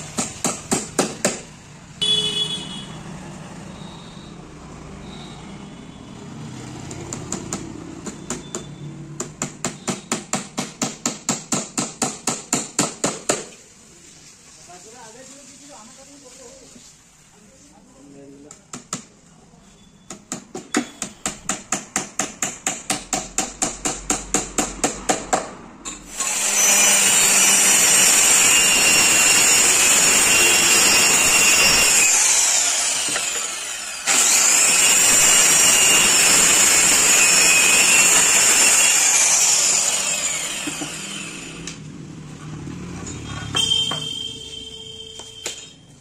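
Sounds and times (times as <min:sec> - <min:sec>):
angle grinder running: 0:26.1 - 0:41.9.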